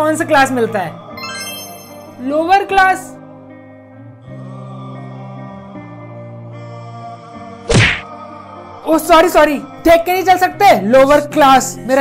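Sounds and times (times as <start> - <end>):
soft background music: 0.0 - 12.0
loud thud: 7.7 - 8.0.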